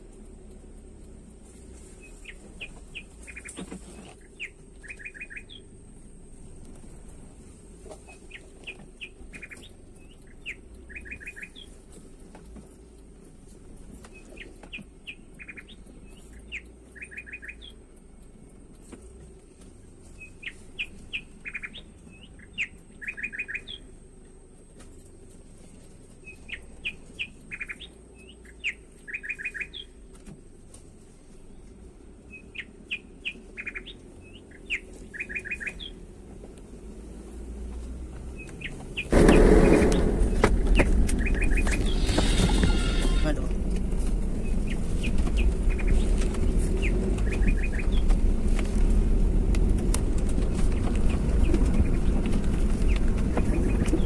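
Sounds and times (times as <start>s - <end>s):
songbird singing whistled notes: 4.2s - 5.8s, 8.1s - 11.8s, 14.1s - 17.9s, 20.1s - 24.0s, 26.2s - 30.0s, 31.5s - 36.0s, 38.3s - 43.0s, 44.4s - 48.1s.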